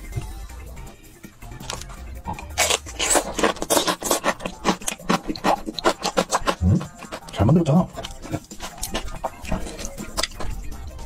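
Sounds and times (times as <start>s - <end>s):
person chewing food: 1.6s - 11.0s
wet mouth clicks: 1.7s - 10.5s.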